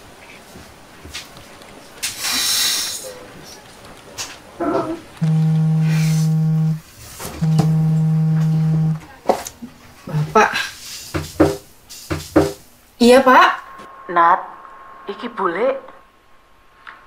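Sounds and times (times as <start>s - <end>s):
phone vibrating on wooden table: 5.2s - 6.8s, 7.4s - 9.0s.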